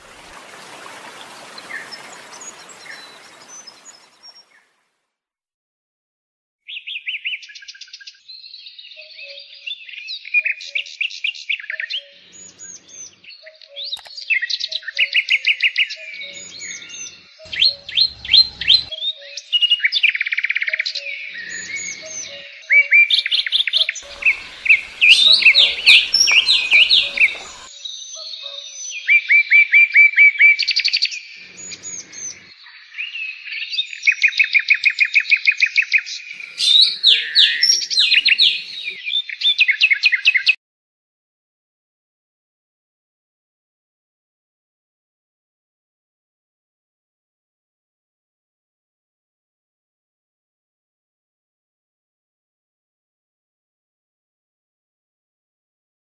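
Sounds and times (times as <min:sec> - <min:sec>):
bird chirping and trilling: 0:00.8 - 0:04.6, 0:11.6 - 0:19.7, 0:21.4 - 0:29.0, 0:36.3 - 0:39.9.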